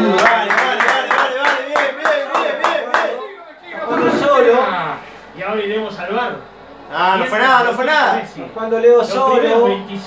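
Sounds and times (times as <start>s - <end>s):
hands clapping rhythmically: 0.0s - 3.2s
voices: 0.0s - 10.0s.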